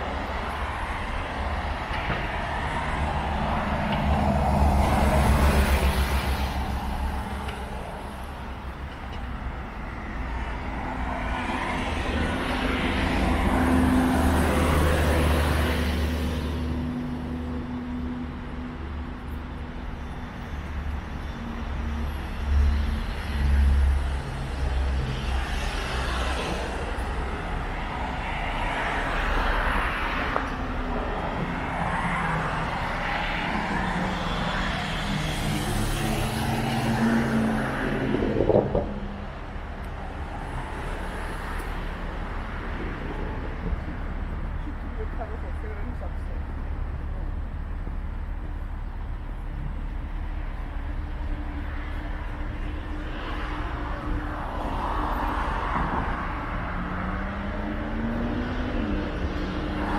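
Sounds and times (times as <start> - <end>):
cars passing: 0.0 - 59.9
low traffic rumble: 0.0 - 59.9.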